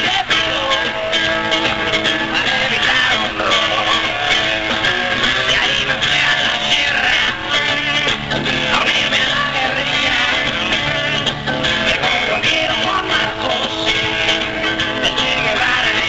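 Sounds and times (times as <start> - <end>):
electric guitar: 0.0 - 16.0
rock band playing live: 0.0 - 16.0.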